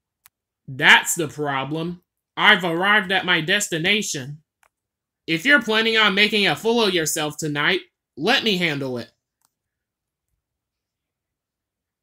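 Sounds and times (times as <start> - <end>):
person speaking: 0.6 - 4.6, 5.3 - 9.3.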